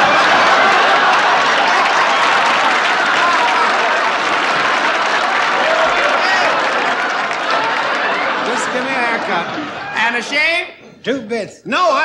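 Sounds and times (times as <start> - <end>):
audience applauding: 0.0 - 10.3
voices and laughter: 6.0 - 10.3.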